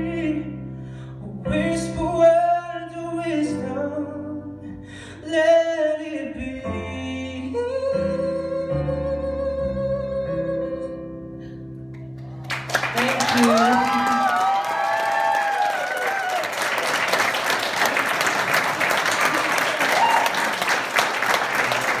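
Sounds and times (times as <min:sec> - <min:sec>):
audience applauding: 0:12.2 - 0:22.0.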